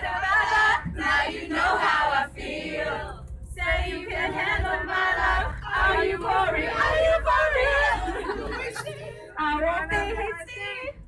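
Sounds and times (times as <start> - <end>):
low rumble of coach: 0.0 - 11.0.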